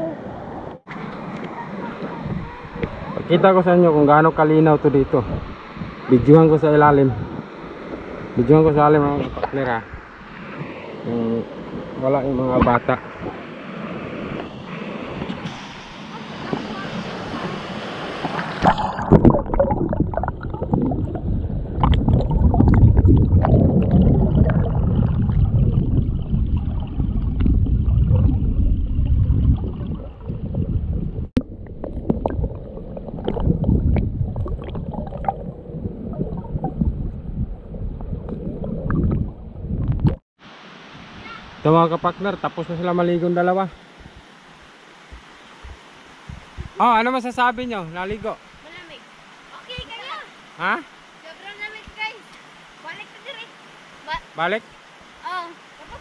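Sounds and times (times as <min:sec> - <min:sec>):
underwater churning rumble: 0:18.4 - 0:40.2.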